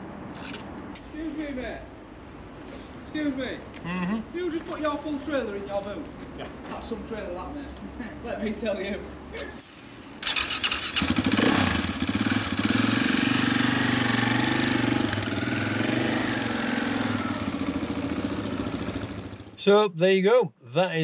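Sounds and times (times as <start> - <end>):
motorcycle engine starting and running: 9.6 - 19.6.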